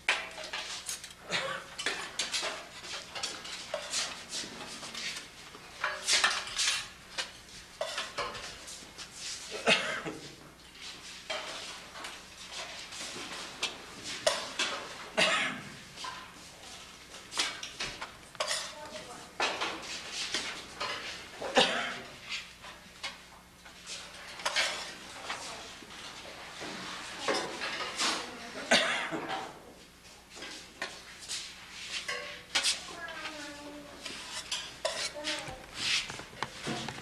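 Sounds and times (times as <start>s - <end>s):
dishes and utensils clinking: 0.0s - 8.7s, 11.3s - 15.0s, 16.0s - 21.8s, 22.6s - 29.6s, 31.9s - 37.0s
dishes clinking: 13.6s - 15.0s, 17.4s - 18.8s, 32.0s - 32.7s.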